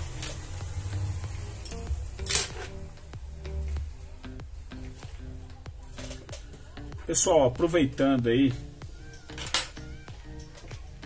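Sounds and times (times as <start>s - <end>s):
background music: 0.0s - 11.0s
small tools clattering on a mat: 2.2s - 2.8s, 5.9s - 6.6s, 9.1s - 10.8s.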